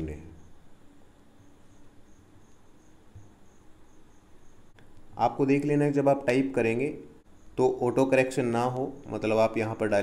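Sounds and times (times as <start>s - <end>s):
faint high-pitched chirp: 0.1s - 4.9s, 7.2s - 9.2s.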